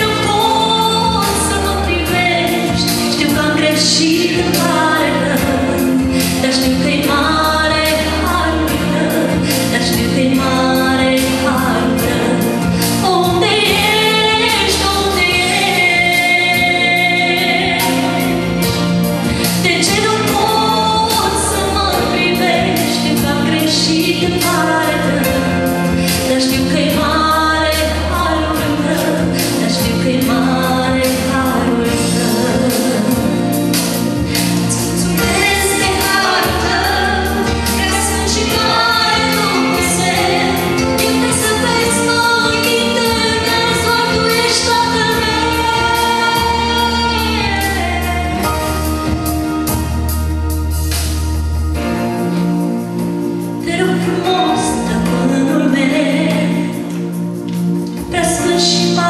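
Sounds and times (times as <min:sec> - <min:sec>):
woman singing a hymn: 0:00.0 - 0:49.8, 0:53.6 - 0:59.0
instrumental accompaniment: 0:00.0 - 0:59.0.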